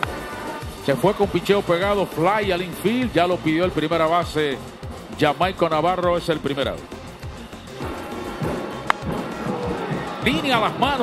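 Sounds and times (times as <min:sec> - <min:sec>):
ballpark ambience: 0:00.0 - 0:11.0
music playing: 0:00.0 - 0:11.0.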